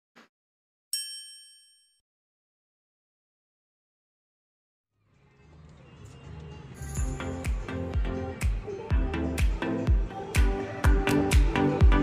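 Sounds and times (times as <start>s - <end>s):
bright bell-like ding: 1.0s - 2.0s.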